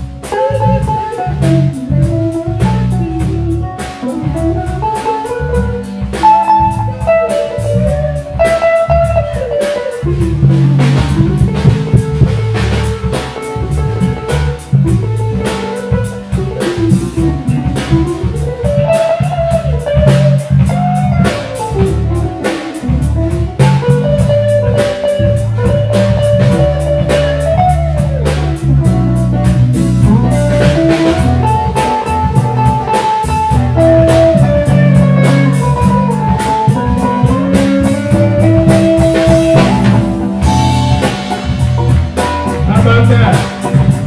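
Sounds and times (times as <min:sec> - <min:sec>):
live blues band playing: 0:00.0 - 0:44.0.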